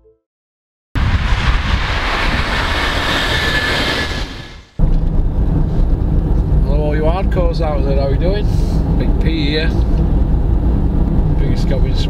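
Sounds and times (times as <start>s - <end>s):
loud rushing noise: 1.0s - 6.9s.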